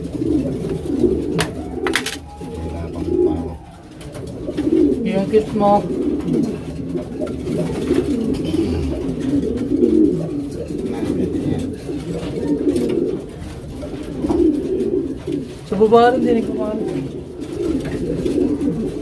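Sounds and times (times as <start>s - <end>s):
pigeons cooing: 0.0s - 19.0s.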